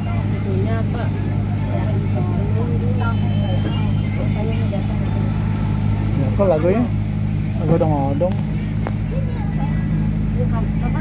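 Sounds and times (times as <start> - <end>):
passengers talking: 0.0 - 11.0
road train engine droning: 0.0 - 11.0.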